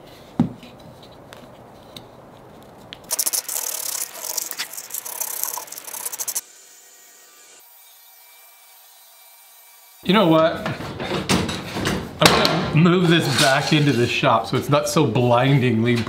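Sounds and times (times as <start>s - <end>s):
sandpaper rubbing wood: 3.1s - 6.4s.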